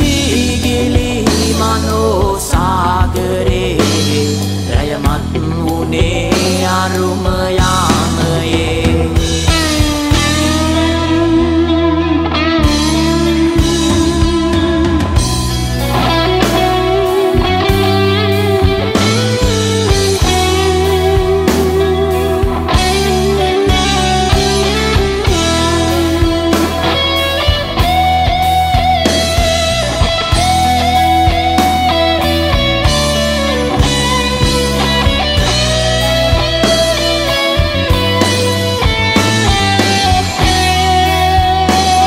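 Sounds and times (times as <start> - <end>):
rock song with electric guitar: 0.0 - 42.0.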